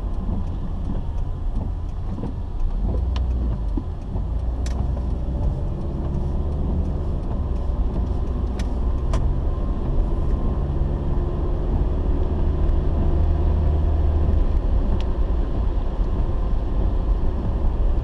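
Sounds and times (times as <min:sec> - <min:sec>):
car interior engine and road rumble: 0:00.0 - 0:18.0.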